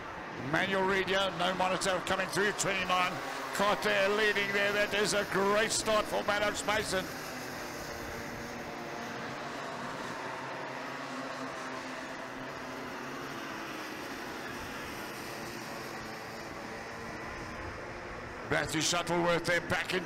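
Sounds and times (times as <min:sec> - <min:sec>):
kart engines droning: 0:00.0 - 0:20.0.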